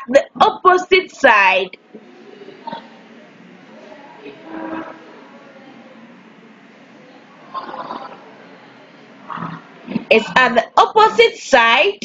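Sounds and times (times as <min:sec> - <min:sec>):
faint voice murmur: 0:01.8 - 0:10.4.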